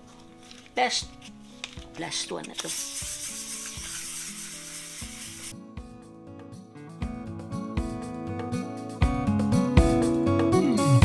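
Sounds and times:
soft guitar music: 0.0 - 11.0
pad scrubbing wooden guitar body: 2.8 - 5.5.

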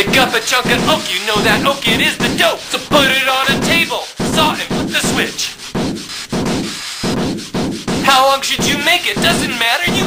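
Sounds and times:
saw cutting wood: 0.0 - 10.0.

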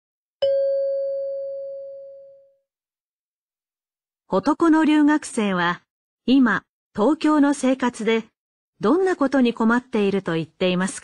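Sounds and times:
bell-like chime ringing: 0.4 - 2.6.

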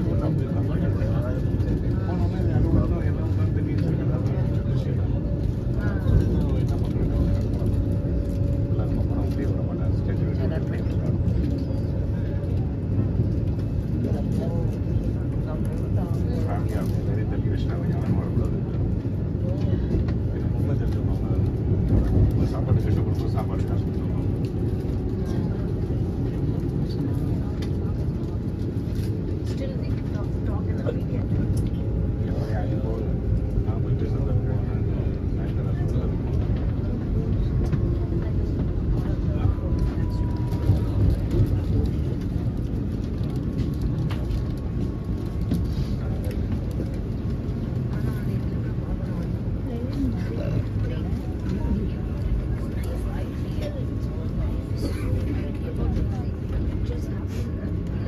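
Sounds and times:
train interior low rumble: 0.0 - 58.0.

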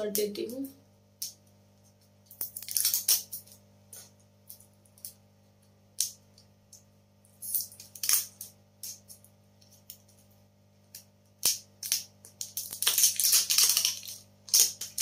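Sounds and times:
plastic wrapping crinkling: 1.8 - 5.2, 7.3 - 15.0.

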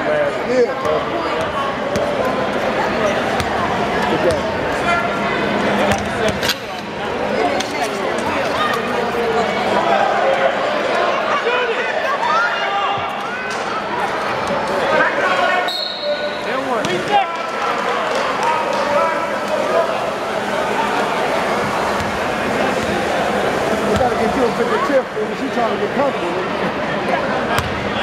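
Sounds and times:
players and spectators voices: 0.0 - 28.0
basketball bouncing on court: 27.6 - 27.8.

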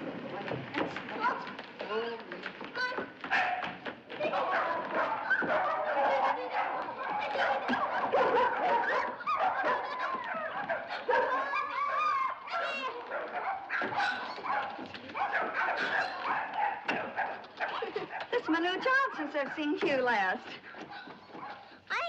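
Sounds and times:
dogs barking and whining: 3.2 - 19.9, 20.6 - 21.8.

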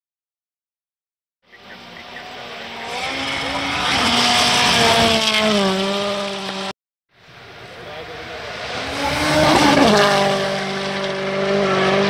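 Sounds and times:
rally car engine approaching: 1.5 - 12.0.

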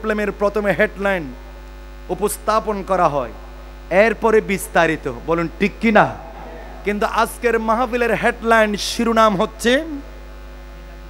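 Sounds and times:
man preaching amplified: 0.0 - 1.4, 2.1 - 10.2
low electrical hum: 0.0 - 11.0.

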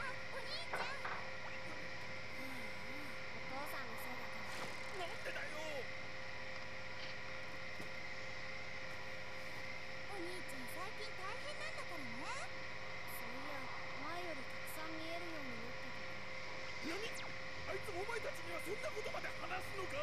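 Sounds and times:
electrical hum and hiss: 0.0 - 20.0
faint dialogue: 0.0 - 20.0.

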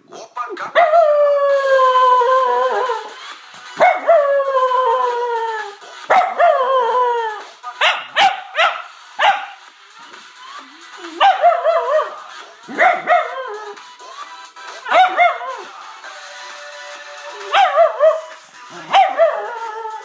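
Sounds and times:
dog howling: 0.8 - 3.2, 3.8 - 7.5, 12.9 - 13.8, 17.5 - 18.3, 18.9 - 20.0
dog yelping: 7.8 - 9.6, 11.2 - 13.7, 14.9 - 15.6, 18.9 - 19.6.

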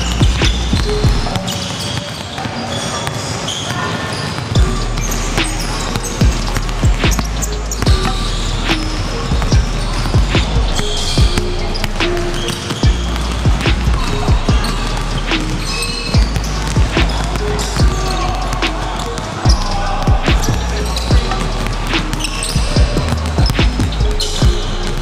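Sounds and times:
background music with bass line: 0.0 - 1.3, 4.6 - 25.0
basketballs bouncing on hardwood floor: 0.0 - 25.0.

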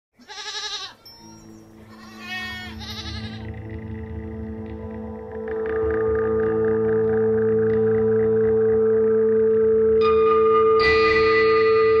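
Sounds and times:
wavering bleats: 0.2 - 3.8
low musical drone: 1.0 - 12.0.

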